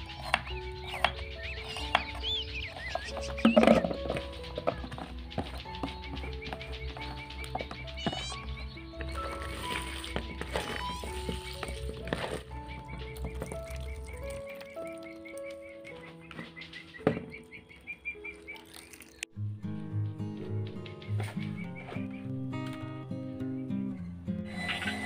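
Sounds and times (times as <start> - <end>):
steady ticking beat: 0.0 - 9.2
instrumental background music: 0.0 - 25.0.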